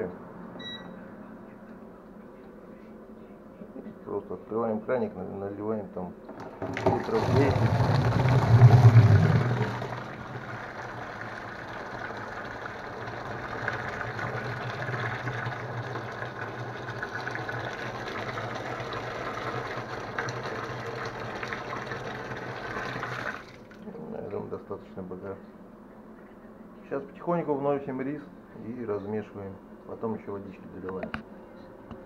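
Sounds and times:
water pouring into plastic barrel: 0:06.3 - 0:24.0.

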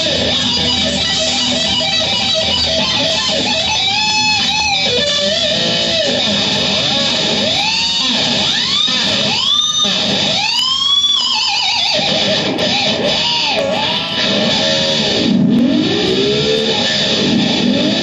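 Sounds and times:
electric guitar lead with string bends: 0:00.0 - 0:18.0.

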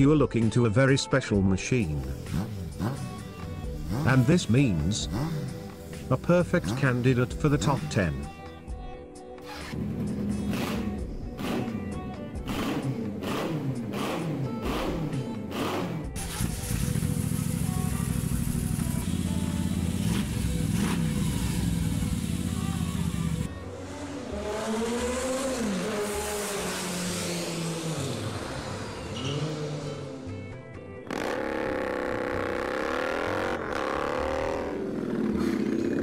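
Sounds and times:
music: 0:00.0 - 0:36.0
motorcycle engines revving: 0:02.0 - 0:08.4, 0:09.6 - 0:36.0.

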